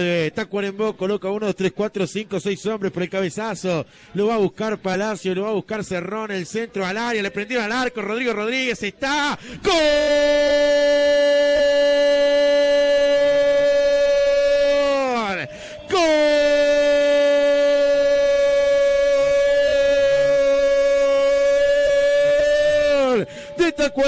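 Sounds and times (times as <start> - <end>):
quick breath: 3.8 - 4.2, 9.4 - 9.7, 15.5 - 15.9, 23.2 - 23.6
man shouting goal call: 9.1 - 24.0.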